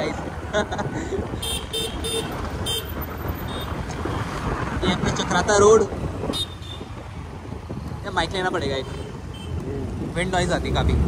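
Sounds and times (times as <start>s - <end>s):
road traffic rumble: 0.0s - 11.0s
wind on microphone: 0.0s - 11.0s.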